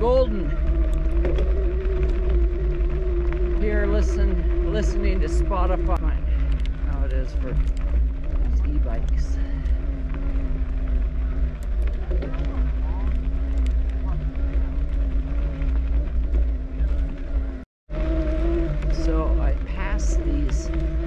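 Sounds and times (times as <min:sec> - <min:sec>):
wind buffeting microphone: 0:00.0 - 0:21.0
steady electric motor hum: 0:07.5 - 0:21.0.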